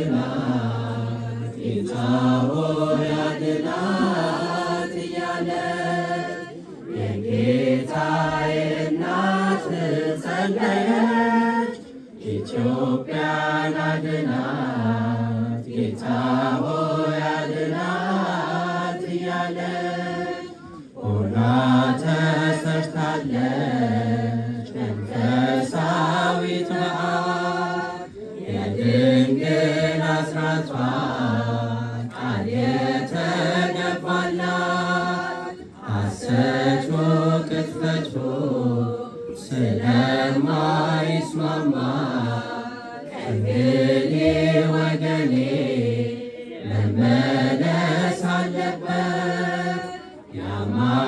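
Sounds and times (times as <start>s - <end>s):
women's choir chanting a hymn: 0.0s - 51.0s.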